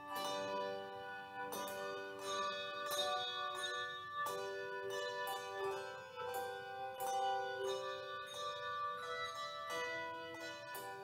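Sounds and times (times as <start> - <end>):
handbell choir playing: 0.0 - 11.0.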